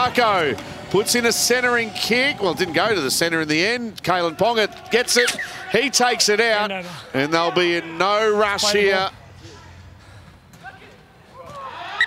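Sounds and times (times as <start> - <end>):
distant shouting voices: 0.0 - 9.0, 10.7 - 12.0.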